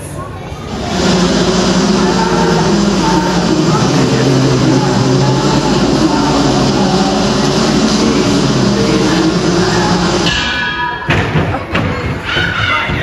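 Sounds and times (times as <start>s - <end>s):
loud rumbling backing track: 0.0s - 13.0s.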